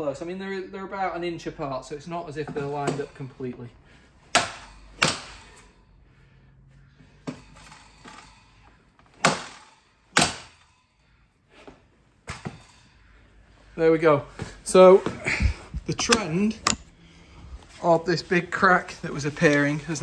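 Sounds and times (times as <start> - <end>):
mallet striking flooring nailer: 9.2 - 9.6, 10.2 - 10.6.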